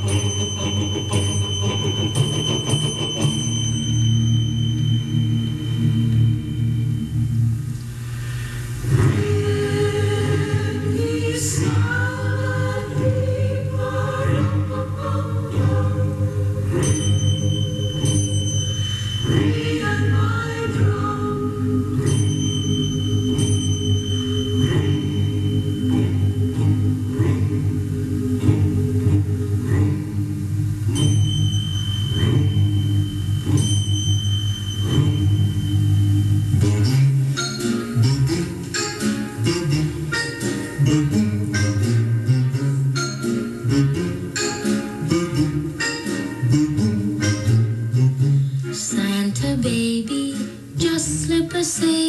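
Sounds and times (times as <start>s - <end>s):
choir singing from radio: 0.0s - 7.2s, 8.8s - 52.0s.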